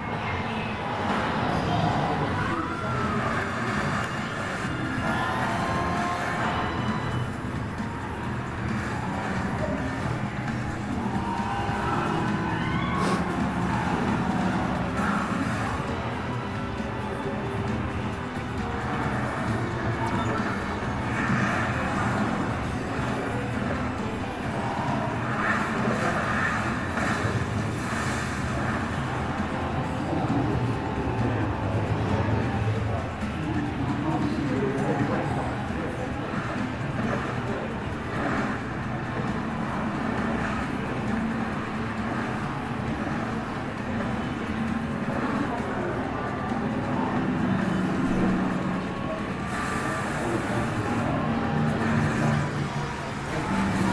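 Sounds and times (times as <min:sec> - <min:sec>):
film music over loudspeakers: 0:00.0 - 0:53.9
engine and chase sound effects: 0:00.9 - 0:53.9.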